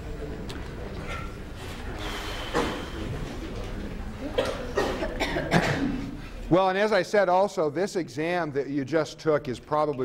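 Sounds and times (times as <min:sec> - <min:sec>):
person coughing: 0:04.2 - 0:06.2.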